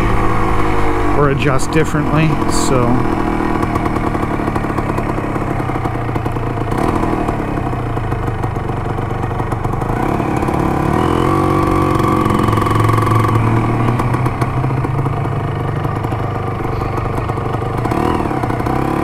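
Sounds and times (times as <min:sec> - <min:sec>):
motorcycle engine revving: 0:00.0 - 0:19.0.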